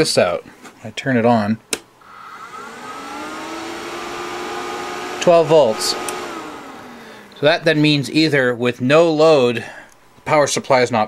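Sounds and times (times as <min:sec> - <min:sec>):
cooling fans whirring: 0:00.0 - 0:11.0.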